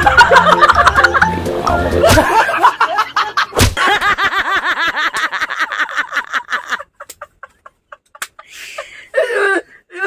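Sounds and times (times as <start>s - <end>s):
men laughing and wheezing: 0.0s - 10.0s.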